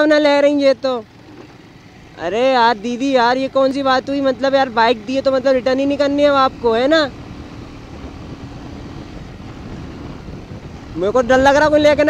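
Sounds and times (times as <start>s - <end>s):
motorcycle engine: 0.0s - 12.0s
wind buffeting microphone: 5.2s - 12.0s.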